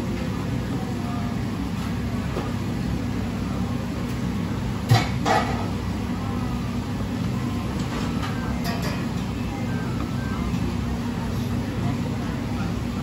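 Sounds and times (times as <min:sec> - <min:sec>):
low kitchen hum: 0:00.0 - 0:13.0.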